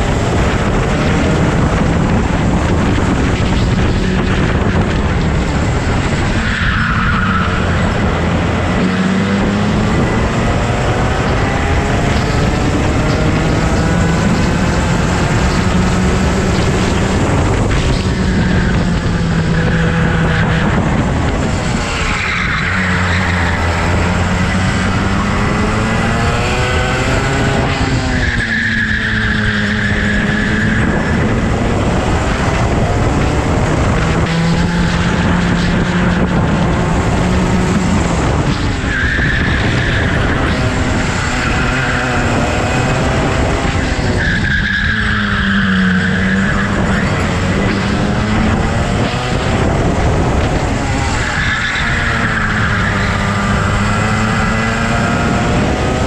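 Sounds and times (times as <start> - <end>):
go-kart engine revving: 0.0 - 56.0.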